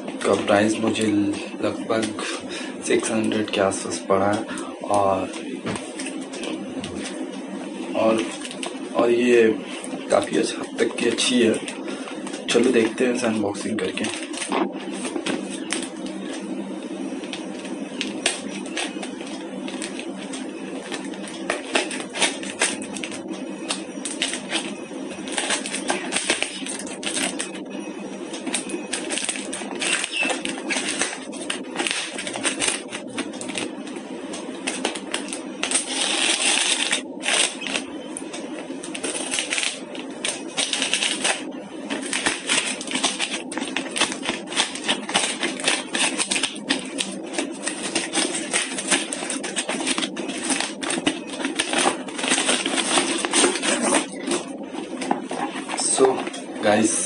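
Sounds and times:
plastic mailer crinkling and tearing: 0:00.2 - 0:07.2, 0:07.9 - 0:16.4, 0:17.2 - 0:27.6, 0:28.3 - 0:33.8, 0:34.4 - 0:56.8.

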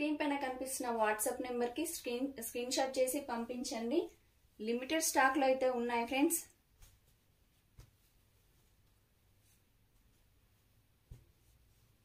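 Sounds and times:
cloth rustling: 0:06.5 - 0:12.0
soft thump: 0:11.1 - 0:11.4.

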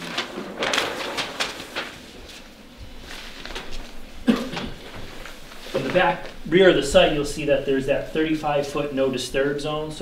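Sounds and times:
paper sheets rustling: 0:00.0 - 0:07.4.

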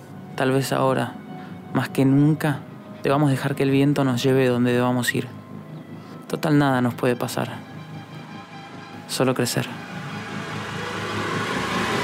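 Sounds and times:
rushing noise: 0:08.5 - 0:12.0.

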